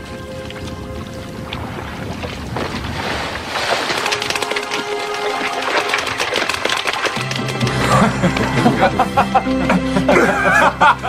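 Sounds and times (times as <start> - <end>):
soft background music: 0.0 - 2.2, 4.1 - 11.0
water splashing and churning: 0.0 - 9.1.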